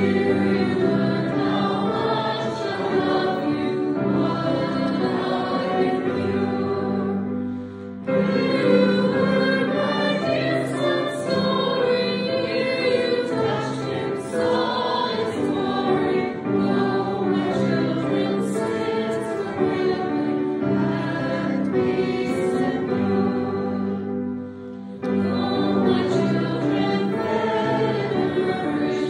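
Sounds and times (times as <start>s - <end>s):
held accompaniment chords: 0.0s - 29.0s
many voices singing a hymn: 0.0s - 29.0s.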